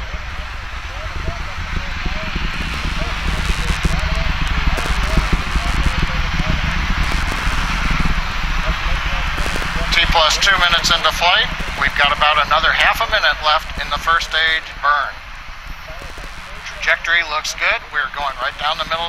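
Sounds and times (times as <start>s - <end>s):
distant rocket engines rumbling: 0.0s - 19.0s.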